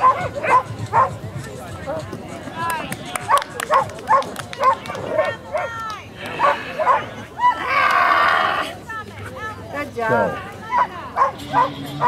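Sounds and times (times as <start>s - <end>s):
dog barking in high yips: 0.0s - 1.2s, 10.7s - 11.8s.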